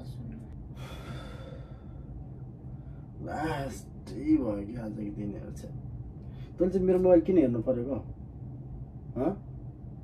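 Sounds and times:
person breathing out: 0:00.8 - 0:02.1.

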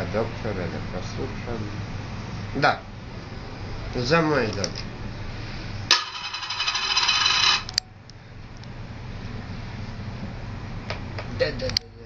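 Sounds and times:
coin rattling in plastic tray: 0:06.0 - 0:07.7.

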